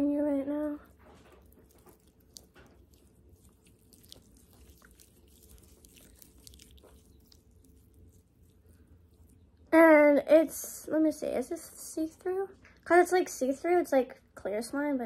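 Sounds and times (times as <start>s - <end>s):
low room hum: 0.0s - 15.0s
wet slime squishing: 0.2s - 9.7s.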